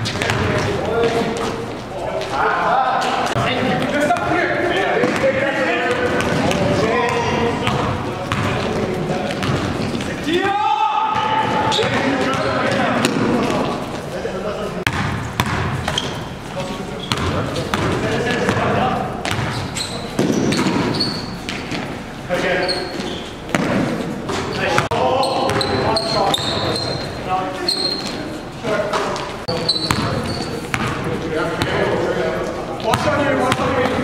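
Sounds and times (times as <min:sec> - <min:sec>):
basketball bouncing on floor: 0:00.0 - 0:01.4, 0:05.0 - 0:08.7, 0:09.3 - 0:13.6, 0:14.9 - 0:16.2, 0:17.1 - 0:21.9, 0:23.5 - 0:25.8, 0:29.5 - 0:31.0
players' voices and calls: 0:00.0 - 0:34.0.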